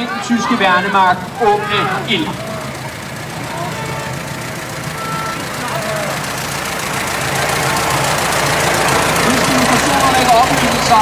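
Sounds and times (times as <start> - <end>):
faint voices: 0.0 - 11.0
vehicle engine humming: 0.0 - 11.0.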